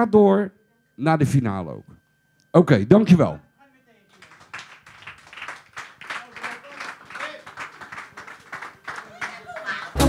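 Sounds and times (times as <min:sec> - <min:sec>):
small crowd clapping: 0:04.1 - 0:10.0.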